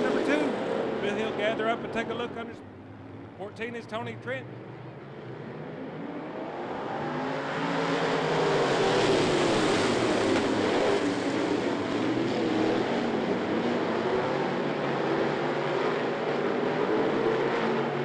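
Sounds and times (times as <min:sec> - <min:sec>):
race car engines: 0:00.0 - 0:18.0.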